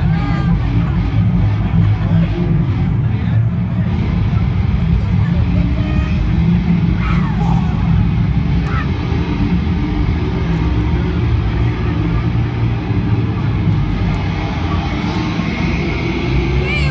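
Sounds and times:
crowd voices: 0.0s - 16.9s
loud distorted concert music: 0.0s - 16.9s.

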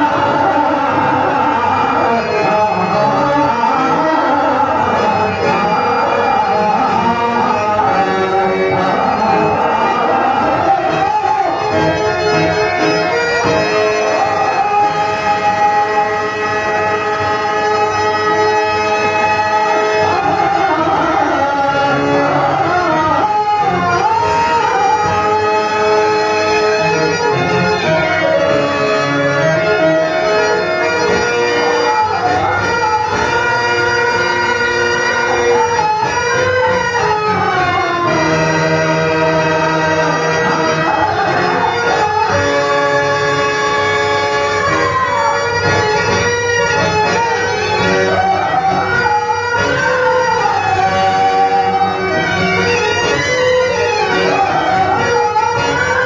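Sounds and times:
harmonium holding a chord: 0.0s - 56.0s.

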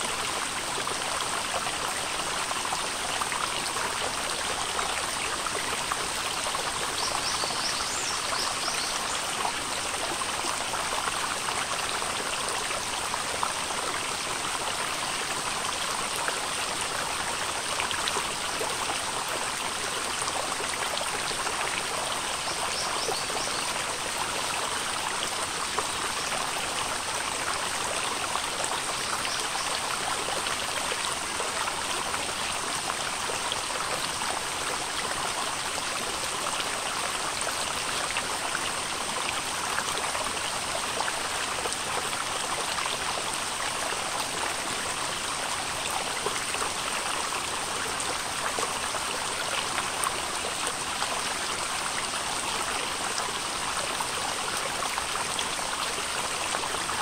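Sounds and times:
stream babbling over stones: 0.0s - 57.0s.

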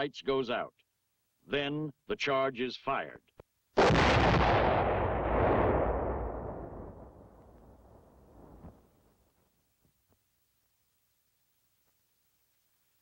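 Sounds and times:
heavy explosion blast: 3.8s - 8.8s.

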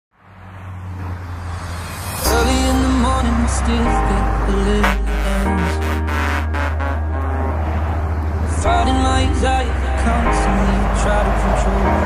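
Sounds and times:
road and traffic noise: 0.1s - 12.0s.

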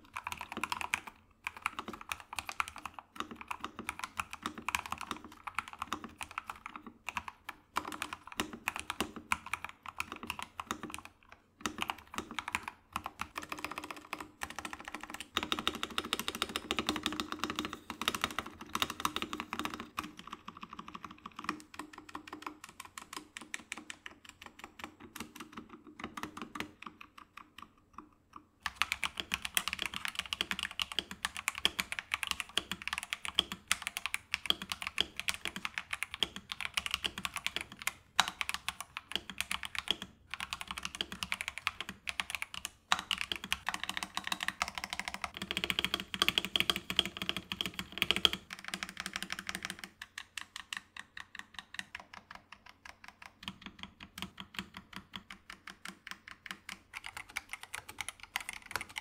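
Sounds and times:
typing on mechanical keyboard: 0.0s - 59.0s.

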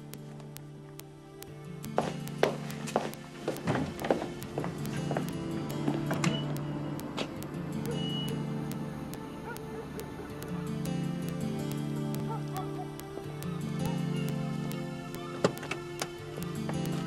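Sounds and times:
background music: 0.0s - 17.0s
footsteps on hard floor: 1.9s - 6.6s.

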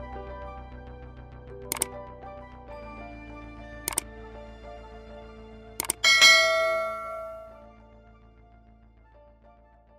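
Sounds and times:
bell-like chime: 6.0s - 7.7s.

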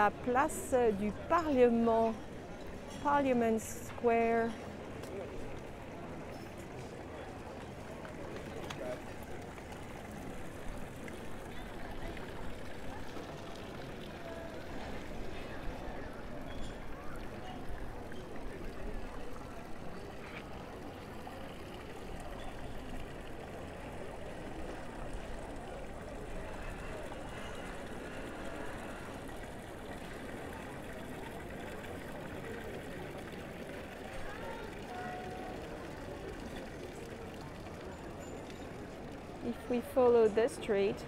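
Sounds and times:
fountain water splashing: 0.0s - 41.0s.

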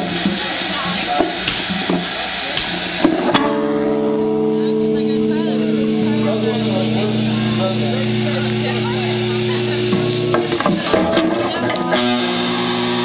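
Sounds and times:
people talking: 0.0s - 13.0s
electric guitar chord ringing: 3.0s - 13.0s.

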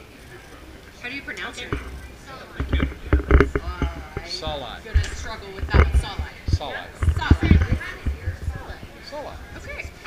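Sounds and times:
indistinct voices talking: 0.0s - 10.0s
low rumbling thuds: 1.7s - 9.0s.

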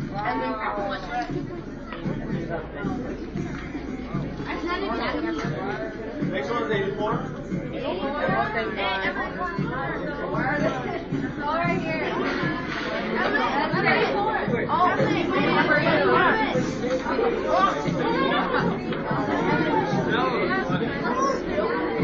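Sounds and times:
overlapping chatter of young people: 0.0s - 22.0s.

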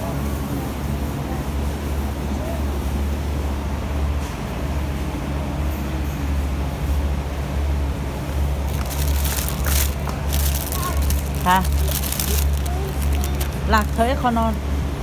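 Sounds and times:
low mechanical hum: 0.0s - 15.0s
plastic bags crinkling: 8.6s - 14.6s
faint voices: 8.7s - 14.7s.

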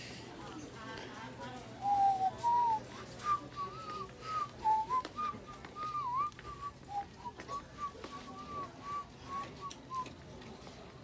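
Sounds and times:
man whistling a tune: 1.8s - 10.1s.

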